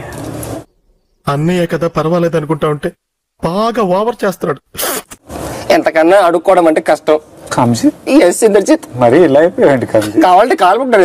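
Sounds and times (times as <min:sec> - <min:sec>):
man speaking: 0:01.2 - 0:04.7.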